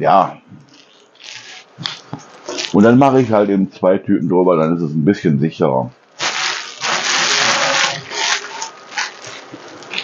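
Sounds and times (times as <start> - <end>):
plastic bags rustling: 0.7 - 3.3, 6.1 - 10.0.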